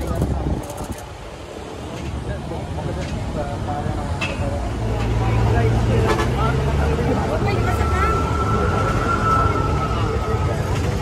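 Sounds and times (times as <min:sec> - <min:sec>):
heavy vehicle engine rumble: 0:00.0 - 0:11.0
people's voices: 0:00.0 - 0:11.0
road traffic: 0:00.0 - 0:11.0.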